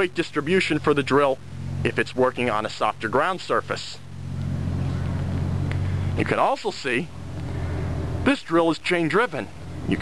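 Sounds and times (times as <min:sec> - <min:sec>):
machine engine drone: 0:00.0 - 0:10.0.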